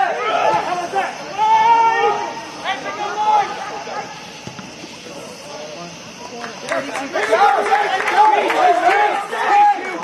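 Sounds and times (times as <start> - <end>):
players calling out: 0.0 - 10.0.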